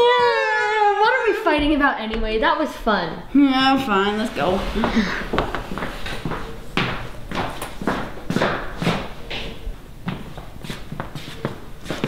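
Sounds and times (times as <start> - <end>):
footsteps on hardwood floor: 3.6 - 12.0.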